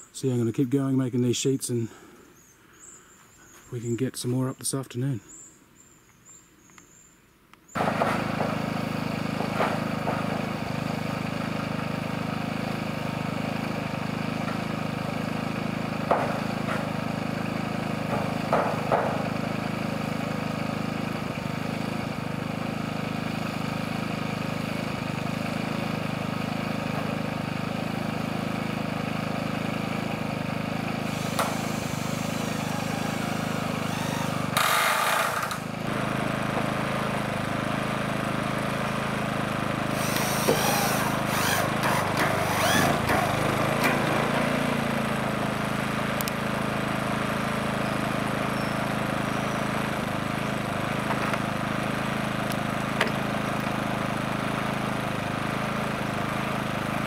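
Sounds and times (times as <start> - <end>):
steady engine drone: 7.8 - 57.0
sharp knocks: 16.0 - 17.0, 18.1 - 19.4
power drill driving screws into metal: 31.0 - 35.7, 39.9 - 44.2.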